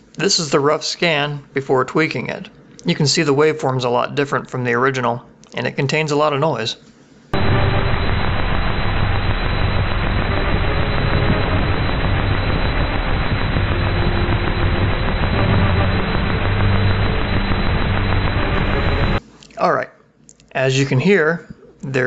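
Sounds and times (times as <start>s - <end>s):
heavy noise: 7.4s - 19.2s.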